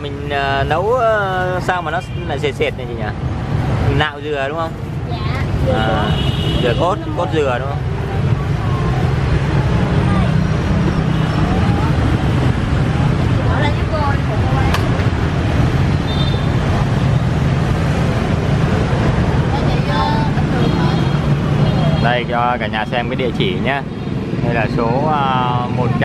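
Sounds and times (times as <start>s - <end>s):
road traffic rumble: 0.0s - 26.0s.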